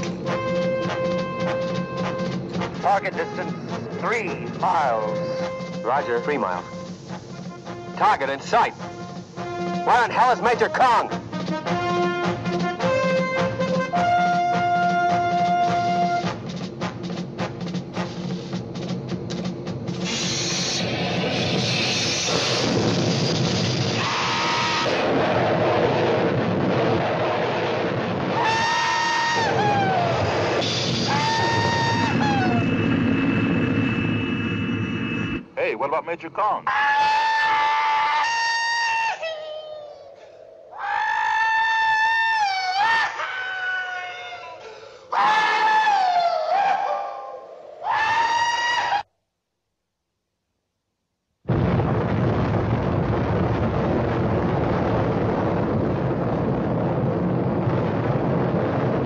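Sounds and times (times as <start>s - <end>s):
aircraft engine drone: 0.0s - 14.0s, 14.8s - 27.6s, 28.2s - 36.2s
film music: 0.0s - 34.2s
man whooping and hollering: 28.4s - 30.2s, 31.0s - 32.7s, 36.6s - 40.1s, 40.8s - 49.0s.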